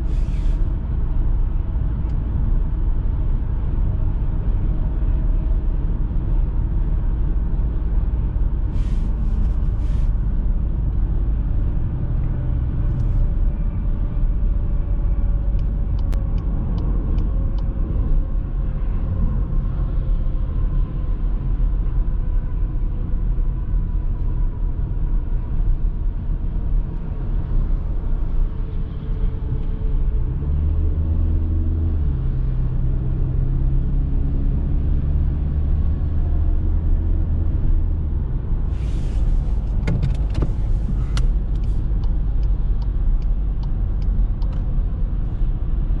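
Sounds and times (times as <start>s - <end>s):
car engine and road rumble: 0.0s - 46.0s
gearbox downshift: 38.8s - 44.7s.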